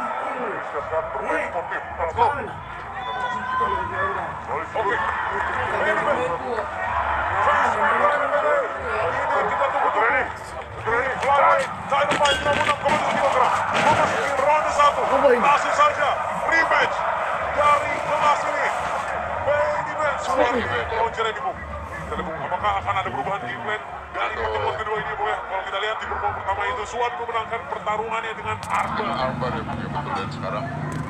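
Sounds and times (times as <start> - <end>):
arena crowd noise: 0.0 - 31.0
men talking: 0.0 - 31.0.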